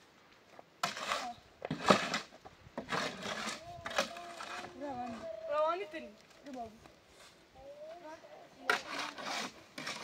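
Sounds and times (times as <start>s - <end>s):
shovel scraping mortar in wheelbarrow: 0.8s - 5.4s, 8.6s - 10.0s.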